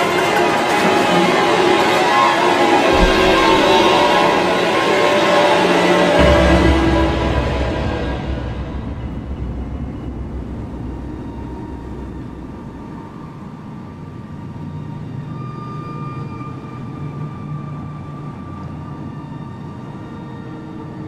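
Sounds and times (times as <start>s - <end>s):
low rumbling drone: 2.9s - 13.6s.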